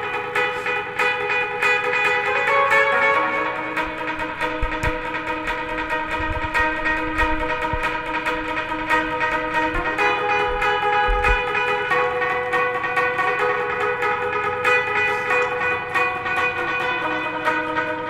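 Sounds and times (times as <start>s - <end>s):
chiming guitar notes: 0.0s - 18.0s
drum thumps: 4.4s - 11.6s.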